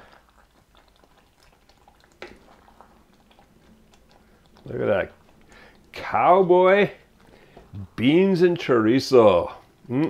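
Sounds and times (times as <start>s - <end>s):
wooden spoon scooping wet beans: 1.6s - 10.0s.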